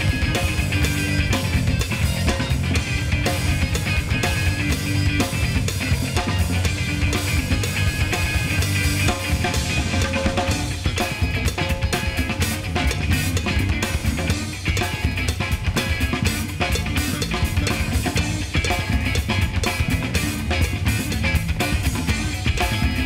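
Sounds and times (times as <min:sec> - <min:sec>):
funk-fusion band jamming: 0:00.0 - 0:23.0.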